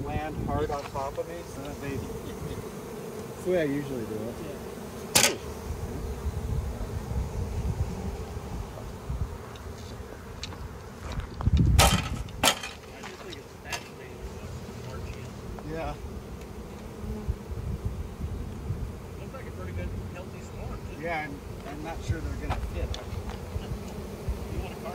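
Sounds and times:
bees buzzing: 0:00.0 - 0:24.9
sharp knocks: 0:05.1 - 0:05.5, 0:11.8 - 0:12.8.

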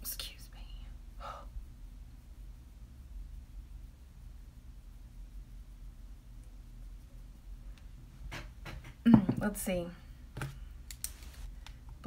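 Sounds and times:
woman whispering: 0:00.0 - 0:01.6.

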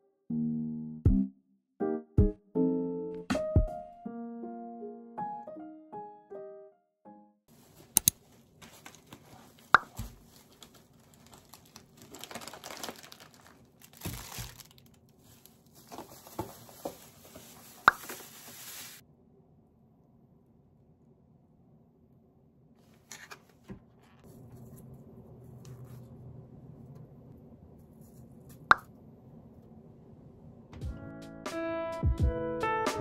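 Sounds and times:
piano music: 0:01.8 - 0:07.4, 0:30.8 - 0:33.0
bag and groceries rustling: 0:07.5 - 0:19.0.

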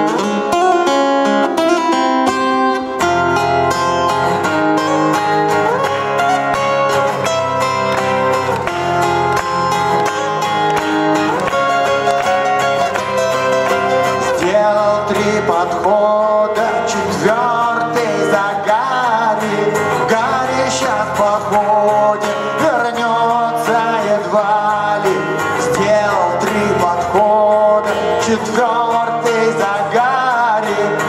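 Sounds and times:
acoustic guitars playing: 0:00.0 - 0:31.0
man singing: 0:14.2 - 0:31.0.

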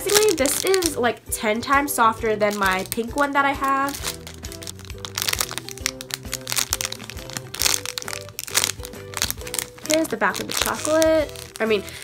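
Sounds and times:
plastic bag crinkling: 0:00.0 - 0:01.0, 0:02.4 - 0:12.0
background music: 0:00.0 - 0:12.0.

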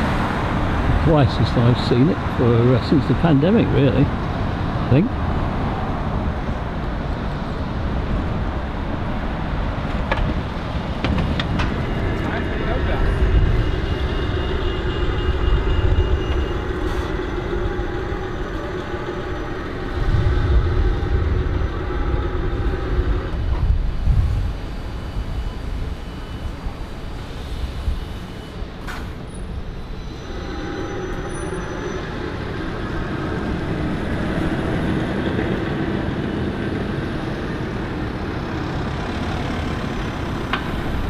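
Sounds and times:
electric bus drive whine: 0:00.0 - 0:41.0
low rumble of city traffic: 0:00.0 - 0:41.0
tyre and road noise: 0:00.0 - 0:41.0.

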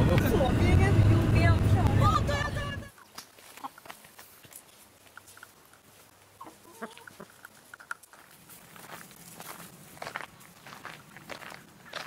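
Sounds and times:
hens clucking: 0:06.2 - 0:07.9.

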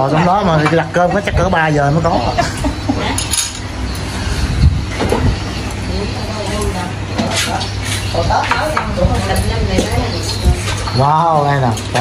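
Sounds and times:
chopsticks and bowls clinking: 0:02.3 - 0:04.2, 0:05.0 - 0:12.0.

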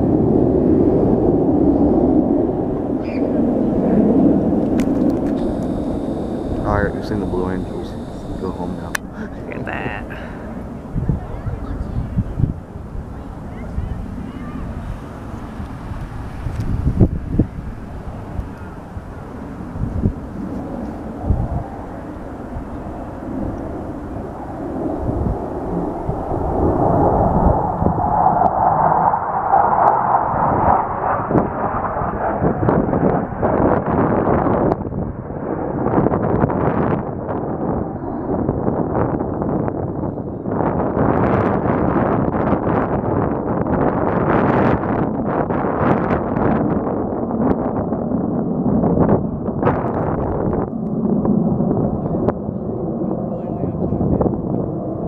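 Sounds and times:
jets passing overhead: 0:00.0 - 0:41.1, 0:42.2 - 0:55.0
wind buffeting microphone: 0:00.0 - 0:55.0.

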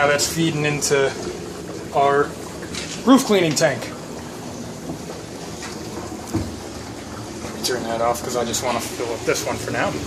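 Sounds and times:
water running into plastic tank: 0:00.0 - 0:10.0.

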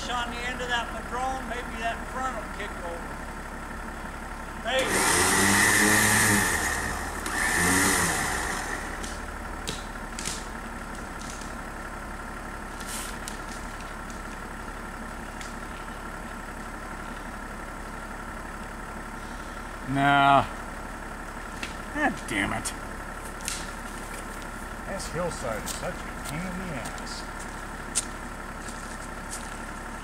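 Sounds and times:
truck engine idling: 0:00.0 - 0:30.0
man shouting: 0:04.7 - 0:05.1.

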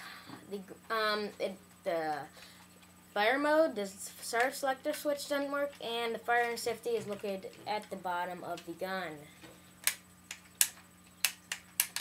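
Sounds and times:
plastic toy pistol clicks: 0:09.8 - 0:12.0.

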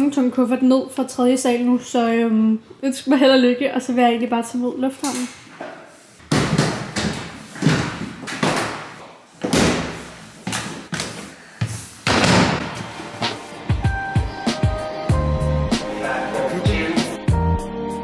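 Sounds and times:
music: 0:12.7 - 0:18.0.

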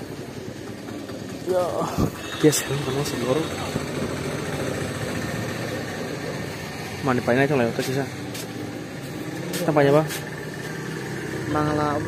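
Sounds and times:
engine running steadily: 0:00.0 - 0:12.0.

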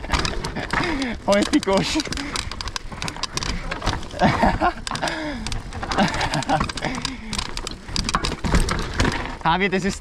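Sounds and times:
bike rattling clicks and knocks: 0:00.0 - 0:10.0
bike tyres crunching over stones: 0:00.0 - 0:10.0.

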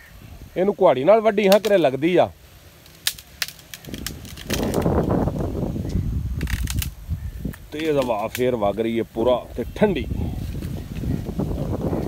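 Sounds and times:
man's voice: 0:07.7 - 0:10.5.

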